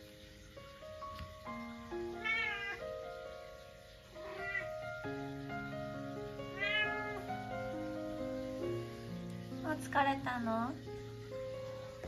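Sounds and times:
background music: 0:00.0 - 0:12.0
cat meowing: 0:02.1 - 0:03.0, 0:04.2 - 0:05.0, 0:06.4 - 0:07.4.

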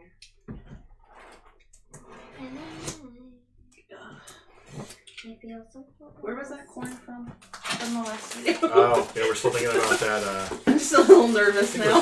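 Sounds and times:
cardboard box rustling: 0:07.6 - 0:12.0.

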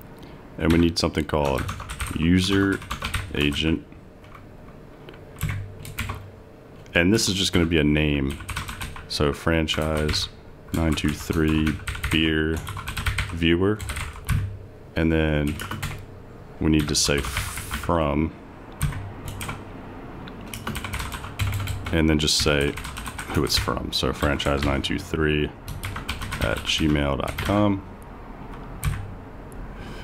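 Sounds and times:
computer keyboard keystrokes: 0:00.6 - 0:03.6, 0:05.4 - 0:06.3, 0:08.3 - 0:09.0, 0:09.7 - 0:14.6, 0:15.4 - 0:16.0, 0:18.7 - 0:19.6, 0:20.3 - 0:24.8, 0:25.7 - 0:27.6, 0:28.5 - 0:29.1.

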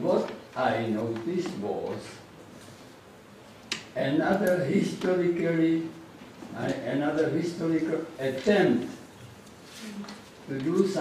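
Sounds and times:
man speaking: 0:00.0 - 0:02.3, 0:04.0 - 0:09.0, 0:10.5 - 0:11.0.

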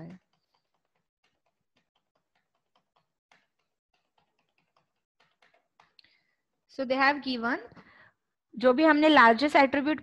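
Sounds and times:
computer keyboard typing clicks: 0:00.1 - 0:06.1.

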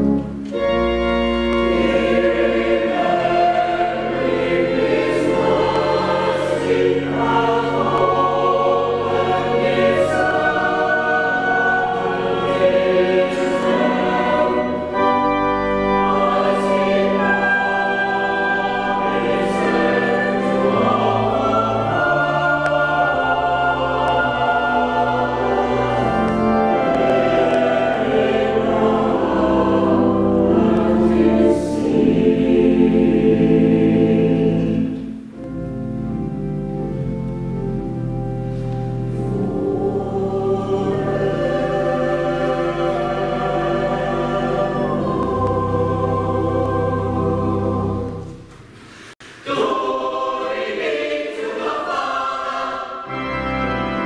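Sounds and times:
choir singing: 0:00.0 - 0:35.7, 0:38.5 - 0:54.0
organ playing: 0:00.0 - 0:48.8, 0:49.7 - 0:54.0.

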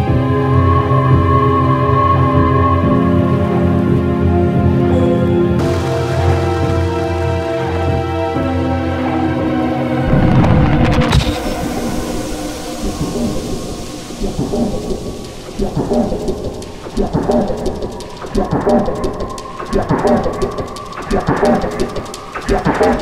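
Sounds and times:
rain hiss: 0:11.1 - 0:23.0.

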